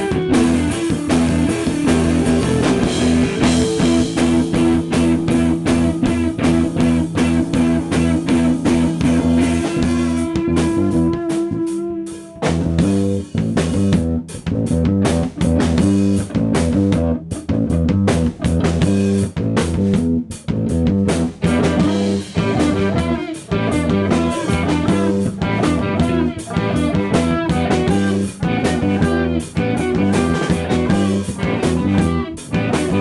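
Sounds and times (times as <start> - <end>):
bass guitar: 0.0 - 33.0
electric guitars: 0.0 - 33.0
steady drum beat: 0.0 - 33.0.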